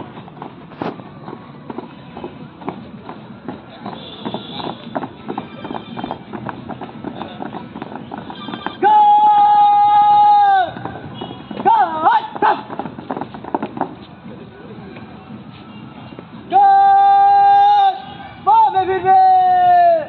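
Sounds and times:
marching boots stamping: 0.0 - 9.6, 10.5 - 14.2
shouted drill command: 8.8 - 10.7.

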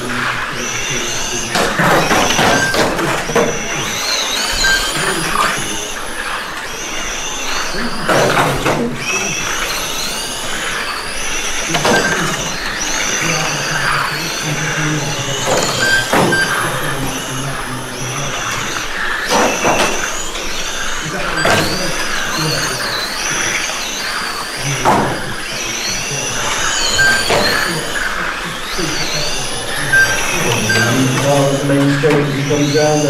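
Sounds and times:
electric rc car motors whining: 0.0 - 33.0.

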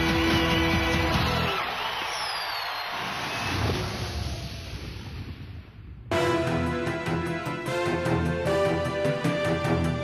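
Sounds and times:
music: 0.0 - 1.8, 6.1 - 10.0.

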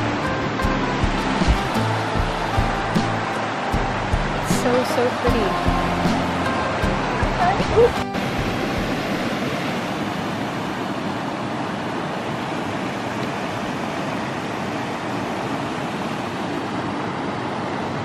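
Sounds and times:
water rushing over rocks: 0.0 - 18.0.

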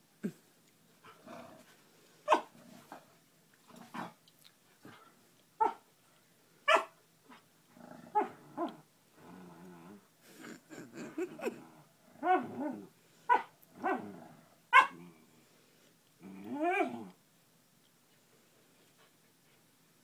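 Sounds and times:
dog growling: 1.1 - 1.7, 7.7 - 12.9, 13.7 - 15.3, 16.2 - 17.2.

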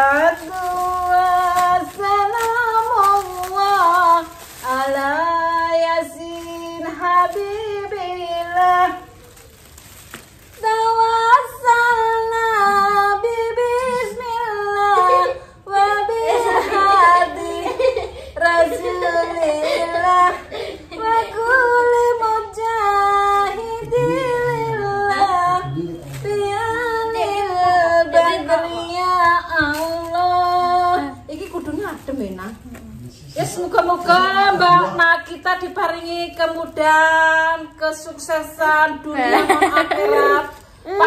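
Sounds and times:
woman singing unaccompanied: 0.0 - 9.4, 10.5 - 32.6, 33.4 - 41.0.

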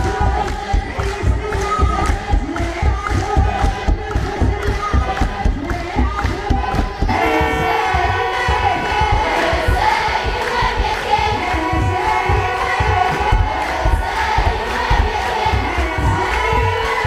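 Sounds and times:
deep barrel drum beats: 0.0 - 17.0
group singing a chant: 0.0 - 17.0.

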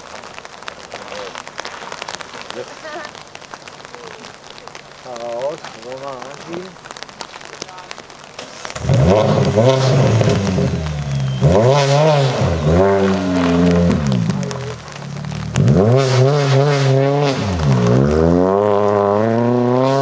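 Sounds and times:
rally car engine revving: 8.7 - 20.0.

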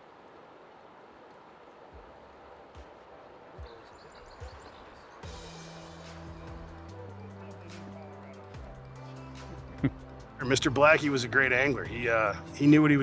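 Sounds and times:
background music with low notes: 1.9 - 13.0.

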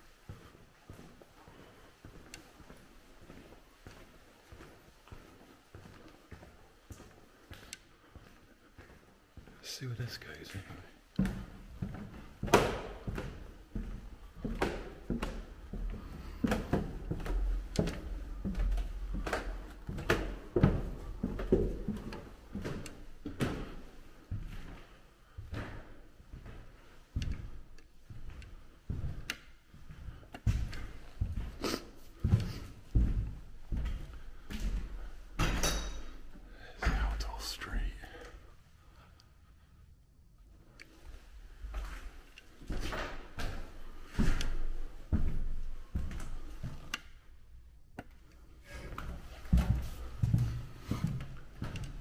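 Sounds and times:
footsteps on wooden stairs: 11.2 - 37.3, 41.6 - 46.9, 48.7 - 52.0.

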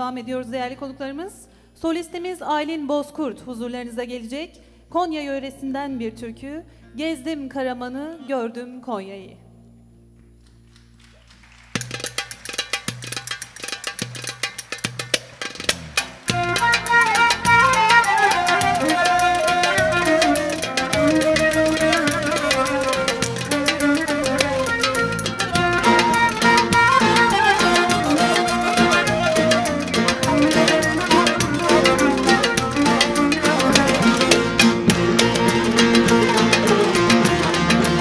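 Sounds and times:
frame drums rhythm: 11.8 - 38.0
folk band with lute and strings: 11.9 - 38.0.

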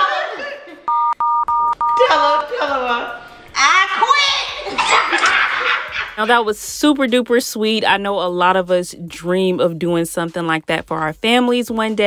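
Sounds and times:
excited women's voices: 0.0 - 0.8, 2.0 - 6.6
two-tone censor bleep: 0.9 - 2.5.

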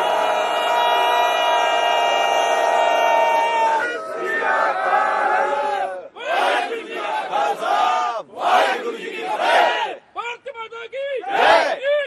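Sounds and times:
soldiers shouting war cry: 2.6 - 10.0, 11.2 - 11.8.

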